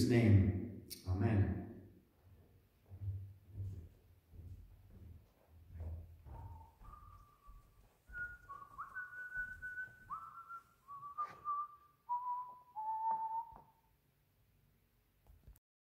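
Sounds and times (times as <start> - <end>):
high whistle-like melody: 6.2 - 13.8.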